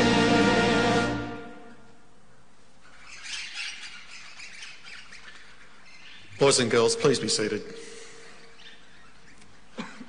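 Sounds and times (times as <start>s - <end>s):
birds chirping and squawking: 2.8s - 9.7s.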